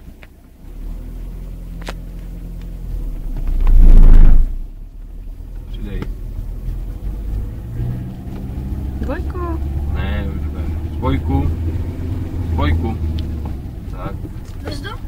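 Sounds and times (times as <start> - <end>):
car engine running: 0.0 - 15.0
loud rumbling swell: 3.5 - 4.7.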